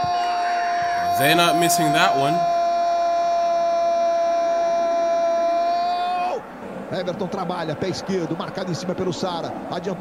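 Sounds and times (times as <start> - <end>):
commentator long held shout: 0.0 - 6.3.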